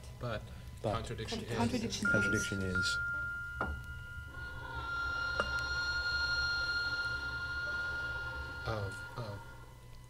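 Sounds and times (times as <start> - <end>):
steady high tone: 2.0 - 9.7
low hum: 2.0 - 10.0.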